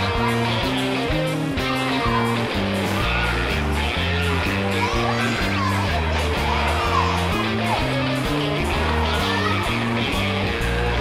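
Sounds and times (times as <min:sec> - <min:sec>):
background music with guitar: 0:00.0 - 0:11.0.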